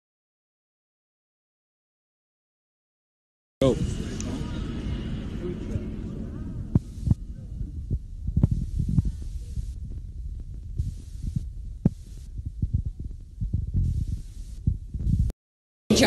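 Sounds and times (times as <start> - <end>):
low rumble: 3.6 - 15.3.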